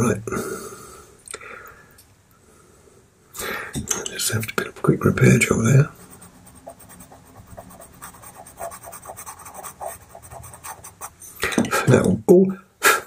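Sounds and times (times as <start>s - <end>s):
pencil scratching on paper: 5.9s - 11.2s.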